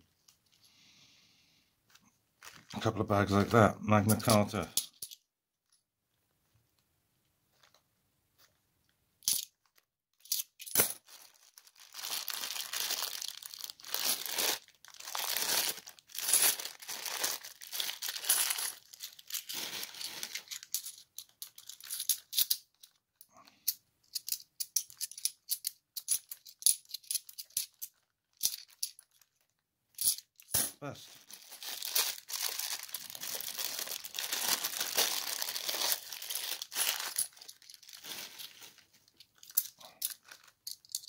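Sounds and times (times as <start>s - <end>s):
plastic bags crinkling: 2.4s - 4.8s, 10.9s - 22.3s, 27.7s - 29.6s, 31.0s - 41.0s.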